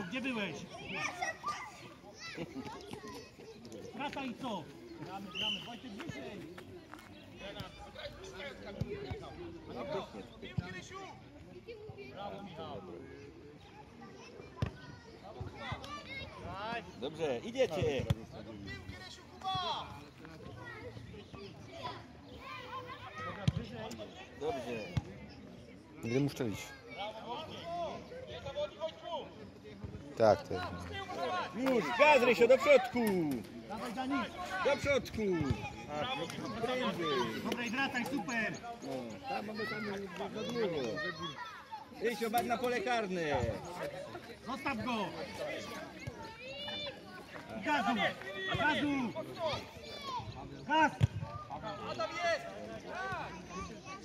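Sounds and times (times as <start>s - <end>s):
children calling and shouting: 0.0s - 54.0s.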